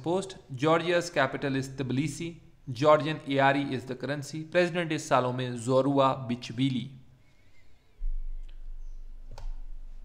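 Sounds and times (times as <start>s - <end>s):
low steady hum: 7.2s - 10.0s
computer mouse clicks: 9.3s - 9.6s.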